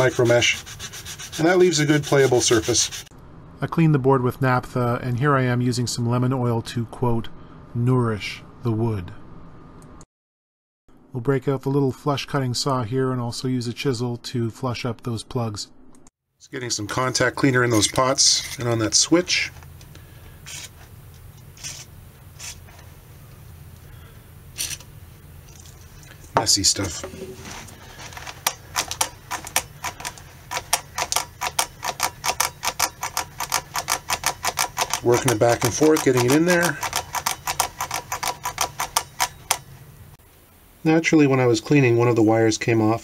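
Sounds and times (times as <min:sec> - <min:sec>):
aerosol spray hissing bursts: 0:00.0 - 0:03.1.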